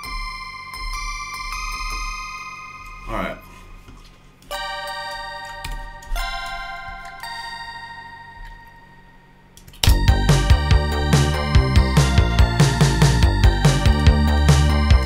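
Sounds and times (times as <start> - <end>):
electronic music with a beat: 0.0 - 3.1, 9.8 - 15.0
bell chords ringing: 0.0 - 3.8, 4.5 - 15.0.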